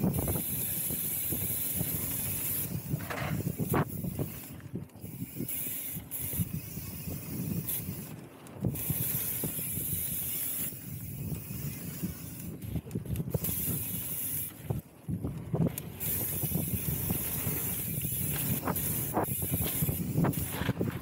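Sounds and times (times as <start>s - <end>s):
bike tyres rumbling on dirt: 0.0s - 21.0s
bike knocks and rattles: 1.3s - 4.5s, 12.5s - 21.0s.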